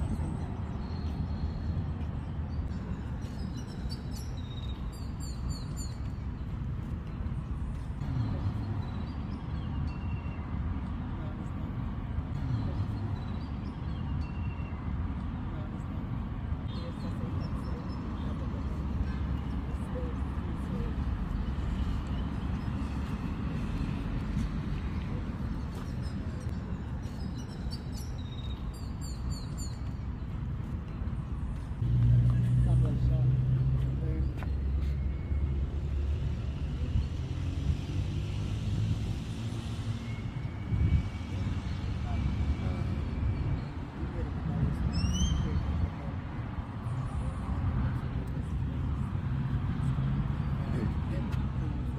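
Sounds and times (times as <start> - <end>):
road traffic rumble: 0.0 - 51.9.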